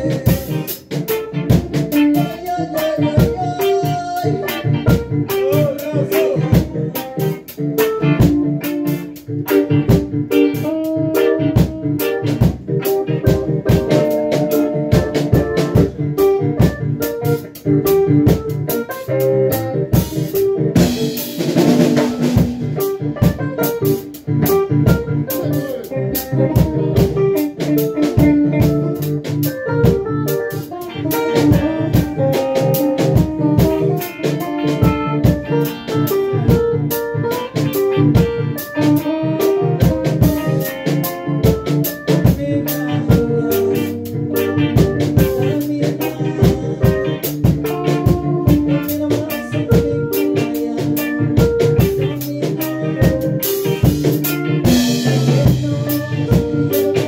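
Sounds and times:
live reggae band playing: 0:00.0 - 0:57.0.

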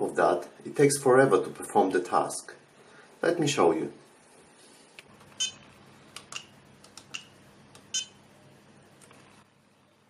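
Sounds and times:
battery checker beeping: 0:05.3 - 0:08.2.

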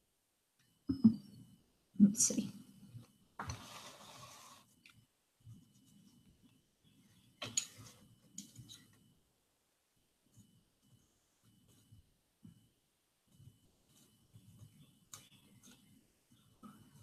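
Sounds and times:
clay teapot scraping: 0:03.4 - 0:04.8.

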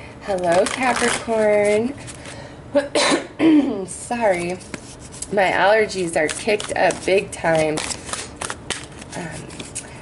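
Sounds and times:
woman coughing: 0:02.8 - 0:03.8.

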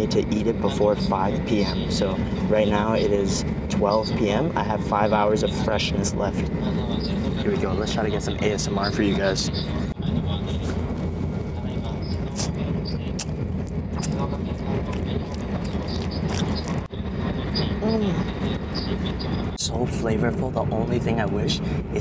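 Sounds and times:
train carriage rumble: 0:00.0 - 0:22.0
close chewing and mouth clicks: 0:13.2 - 0:16.9.

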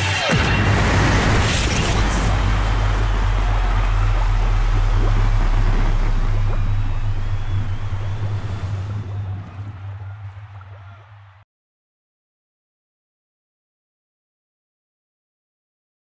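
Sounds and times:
water rushing: 0:00.0 - 0:11.4
deep steady rumble: 0:00.6 - 0:10.7.

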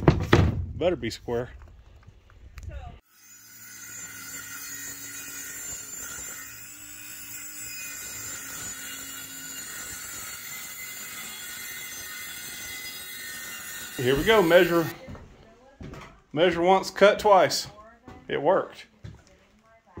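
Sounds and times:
circular saw cutting plywood: 0:03.0 - 0:15.0.

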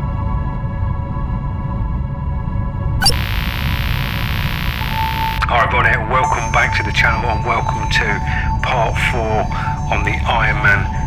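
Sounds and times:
low hum: 0:03.0 - 0:05.4
static hiss: 0:03.0 - 0:05.4
steady beep-like tone: 0:03.0 - 0:05.4.

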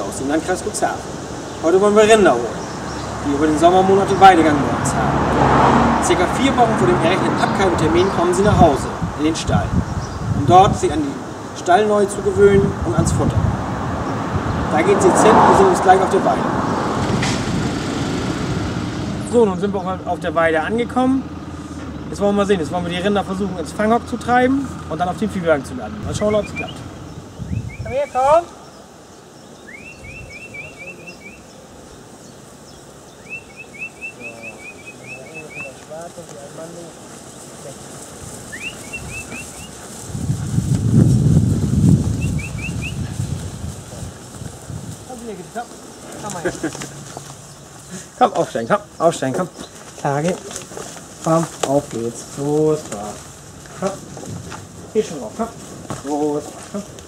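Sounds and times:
tractor engine rumbling: 0:00.0 - 0:29.0, 0:29.8 - 0:57.0
songbird trilling: 0:01.2 - 0:04.5, 0:26.1 - 0:36.0, 0:38.4 - 0:39.8, 0:42.1 - 0:43.3.

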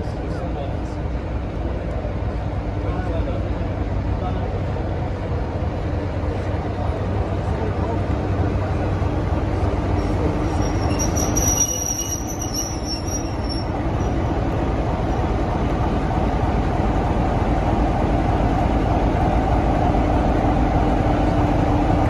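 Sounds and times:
diesel locomotive engine running: 0:00.0 - 0:22.0
wheels squealing: 0:10.0 - 0:14.2.

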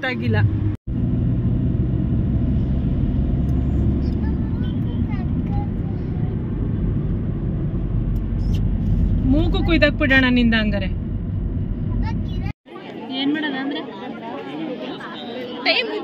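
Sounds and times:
road and engine rumble in car: 0:00.0 - 0:12.6.

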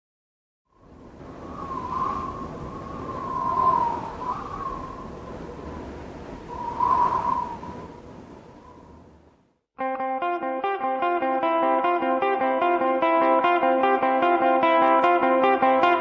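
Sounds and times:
hissing with wavering whistle: 0:01.4 - 0:05.8, 0:06.4 - 0:08.0.

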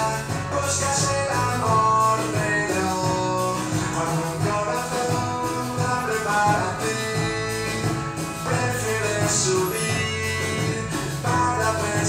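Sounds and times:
guitar accompaniment: 0:00.0 - 0:12.0
man singing with auto-tune: 0:00.0 - 0:12.0.

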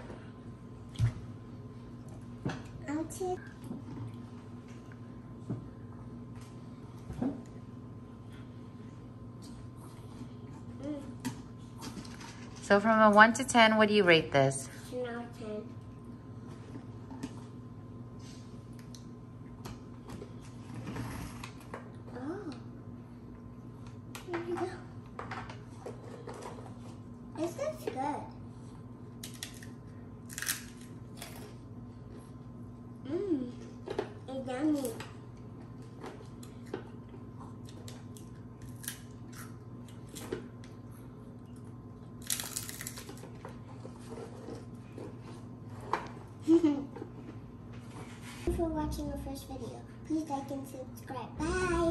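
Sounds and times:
steady low hum: 0:00.0 - 0:51.9.

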